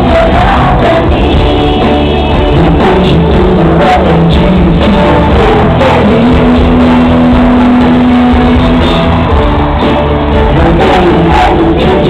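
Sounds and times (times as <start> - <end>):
live pop rock band: 0.0 - 12.0.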